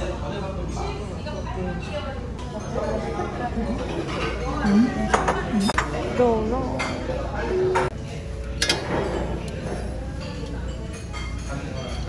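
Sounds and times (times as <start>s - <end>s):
chatter of voices: 0.0s - 12.0s
plates and utensils clinking: 1.8s - 12.0s.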